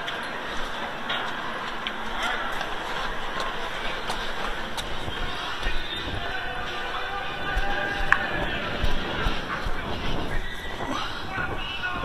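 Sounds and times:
footsteps on concrete stairs: 0.0s - 12.0s
stadium crowd noise: 0.0s - 12.0s.

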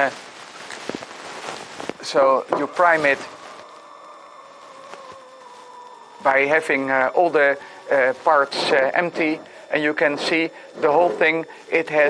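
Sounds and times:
faint constant hum: 0.0s - 12.0s
man speaking: 2.0s - 4.1s, 6.2s - 12.0s.

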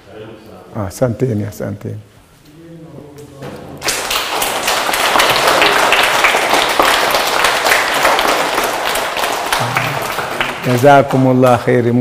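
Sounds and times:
children clapping: 3.8s - 11.7s.

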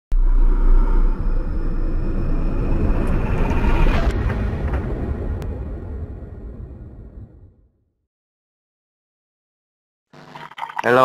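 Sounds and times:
deep cinematic rumble: 0.1s - 8.0s.

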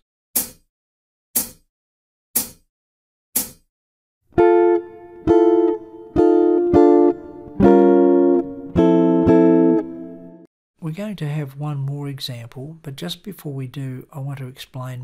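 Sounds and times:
jazz guitar chords: 4.4s - 10.5s.

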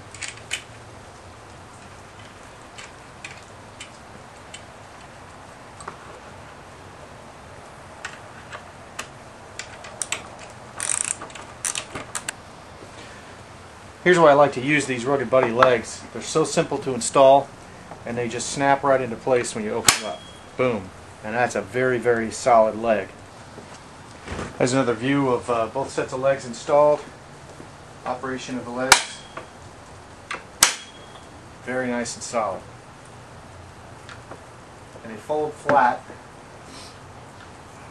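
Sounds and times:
metallic clicks of hand tools: 8.0s - 12.3s
socket ratchet clattering: 9.6s - 12.3s
metal table leg snapping into place: 30.6s - 31.0s.

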